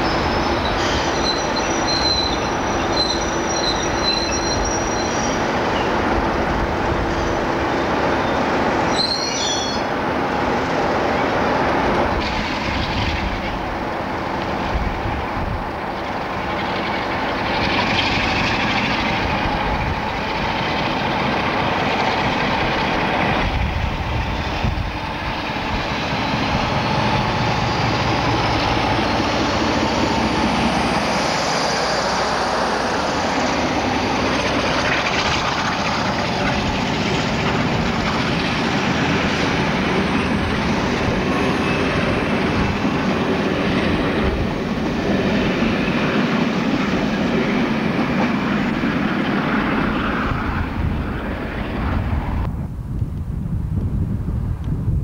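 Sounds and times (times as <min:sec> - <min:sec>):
high steady whistle: 0:00.0 - 0:05.9, 0:08.8 - 0:09.9
wheels squealing on rail: 0:00.0 - 0:10.0, 0:10.7 - 0:13.9, 0:16.0 - 0:52.4
diesel locomotive engine drone: 0:00.0 - 0:55.0
faint rising whine of train: 0:00.0 - 0:55.0.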